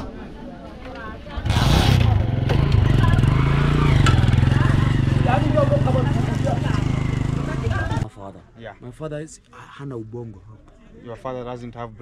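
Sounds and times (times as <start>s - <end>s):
voices: 0.0s - 8.2s
motorcycle engine running: 1.4s - 8.0s.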